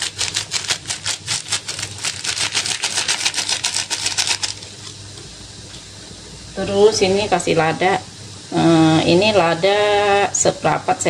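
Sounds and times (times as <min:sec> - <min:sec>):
plastic sachet crinkling: 0:00.0 - 0:04.9.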